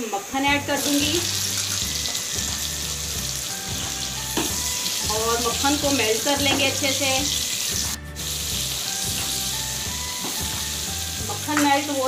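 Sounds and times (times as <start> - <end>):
butter sizzling in oil: 0.0 - 12.0.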